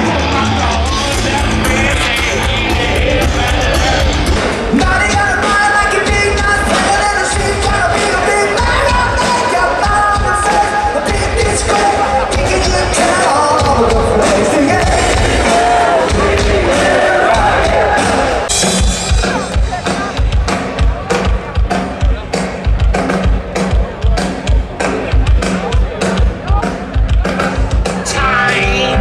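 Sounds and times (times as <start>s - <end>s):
fast hard-hit drum beat: 0.0s - 29.0s
live rock band: 0.0s - 29.0s
person singing: 0.3s - 18.5s, 28.0s - 29.0s.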